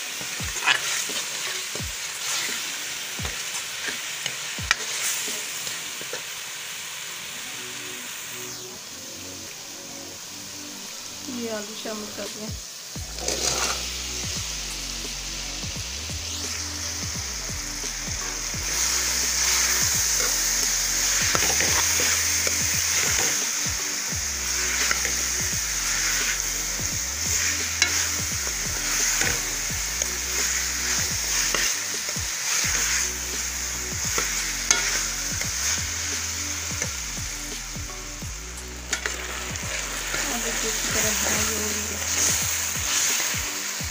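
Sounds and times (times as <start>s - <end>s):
potatoes sizzling in oil: 0.0s - 43.9s
spoon scraping metal pan: 13.2s - 13.8s, 34.1s - 35.1s.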